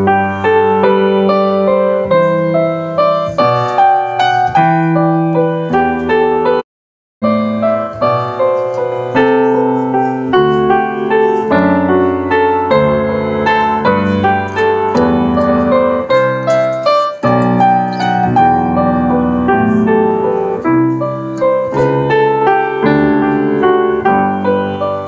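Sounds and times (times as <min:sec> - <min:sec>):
gentle instrumental chords: 0:07.2 - 0:25.0.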